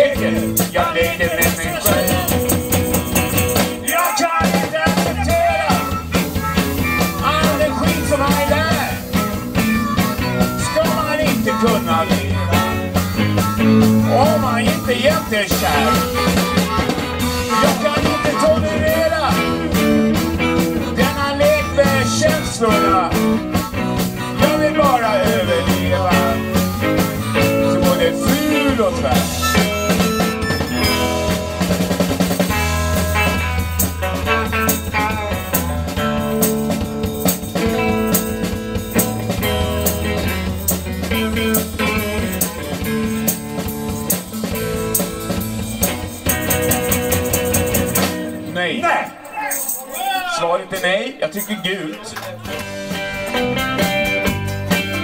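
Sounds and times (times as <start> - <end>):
harmonica: 0.0 - 48.2
bass: 0.0 - 49.0, 51.2 - 55.0
electric guitar lead: 0.0 - 49.3, 52.3 - 55.0
drum kit: 0.0 - 50.1, 52.3 - 55.0.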